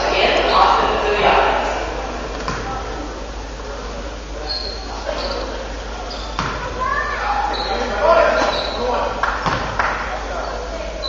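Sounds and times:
people chattering: 0.0 - 11.0
sneaker squeaks on hardwood: 4.4 - 6.7, 7.4 - 8.9
basketball bouncing: 6.3 - 6.7, 9.4 - 9.8.

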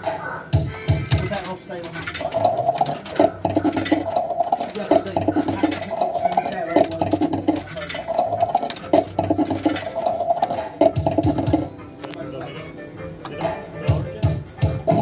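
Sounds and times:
fruit machine clicks: 1.2 - 11.7
fruit machine electronic tones: 2.2 - 11.7.

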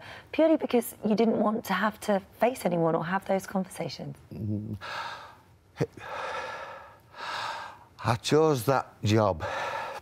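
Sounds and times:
man speaking: 4.3 - 4.8, 8.0 - 9.6.

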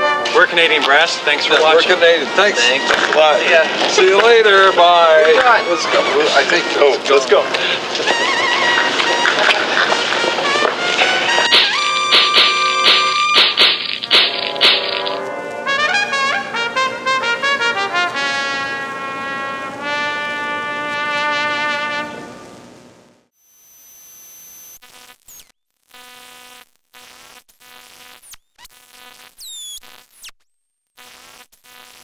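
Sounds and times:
brass quintet music: 0.0 - 22.4
stuttering electronic buzz: 11.0 - 15.7, 22.5 - 32.0
high falling zips: 11.1 - 15.4, 28.1 - 30.4.

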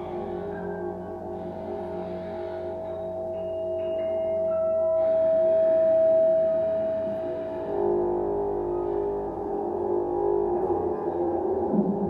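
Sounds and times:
droning ensemble music: 0.0 - 12.0.

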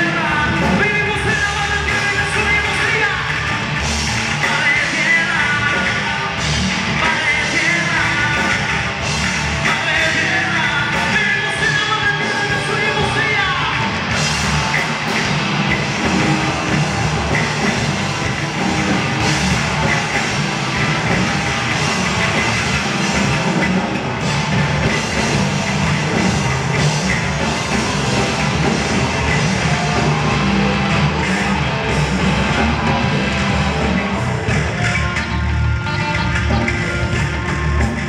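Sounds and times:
drum kit: 0.0 - 38.0
electric bass: 0.0 - 38.0
electric guitar: 0.0 - 38.0.

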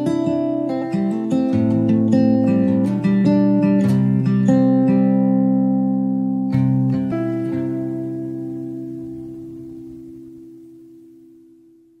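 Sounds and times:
music chord ringing out: 6.2 - 12.0.

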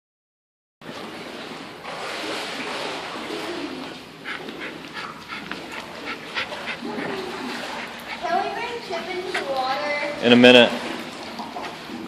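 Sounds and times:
small dog panting: 3.8 - 10.2.

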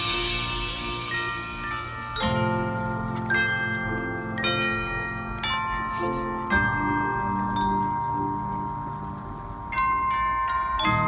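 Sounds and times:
mallet percussion strikes: 0.0 - 11.0
marching band sustained chords: 0.0 - 11.0.

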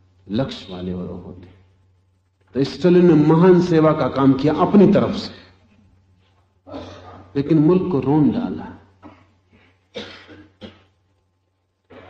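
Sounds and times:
person coughing: 6.7 - 7.4, 9.0 - 11.0.

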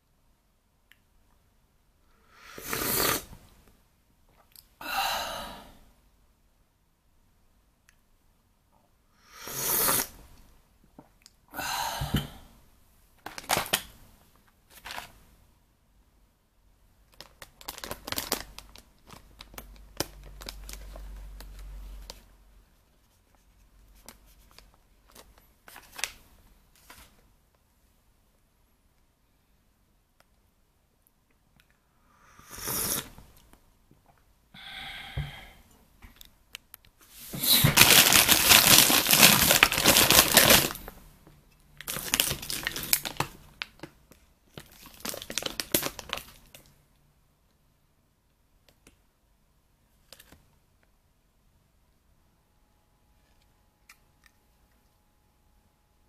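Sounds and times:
coffee bag crinkling: 17.1 - 21.5, 37.4 - 41.0, 41.8 - 43.8, 44.5 - 46.6.

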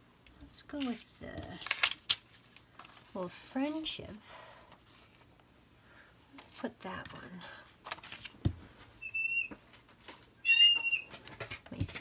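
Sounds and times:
high-pitched whistle-like squeaks: 9.0 - 9.6, 10.4 - 11.1.

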